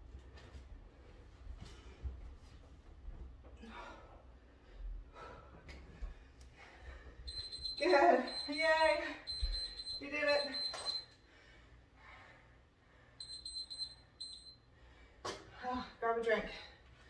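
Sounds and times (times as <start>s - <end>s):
electronic timer beeping: 7.3s - 11.2s, 13.2s - 14.6s.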